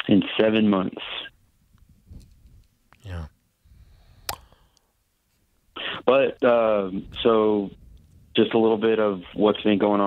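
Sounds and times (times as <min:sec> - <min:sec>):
man murmuring: 0:03.0 - 0:03.4.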